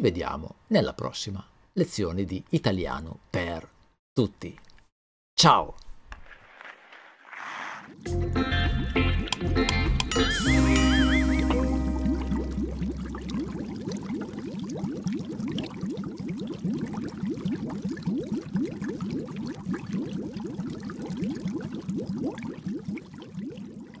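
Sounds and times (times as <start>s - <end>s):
jingle low note: 10.1s - 13.0s
cartoon bubbling bloops: 10.1s - 24.0s.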